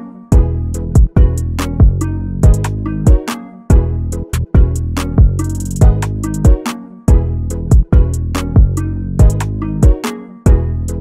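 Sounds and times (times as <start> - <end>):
beat with heavy bass: 0.4 - 11.0.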